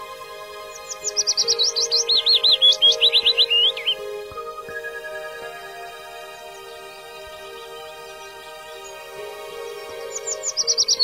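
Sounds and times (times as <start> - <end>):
soft background music: 0.0 - 11.0
songbird singing high notes: 0.0 - 11.0.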